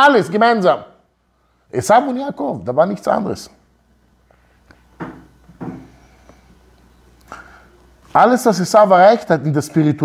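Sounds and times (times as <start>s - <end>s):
short knocks on desk: 5.0s - 5.9s.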